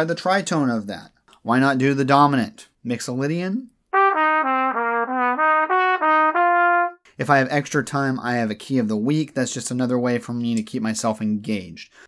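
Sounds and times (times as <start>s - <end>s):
solo trumpet notes: 3.9s - 7.0s.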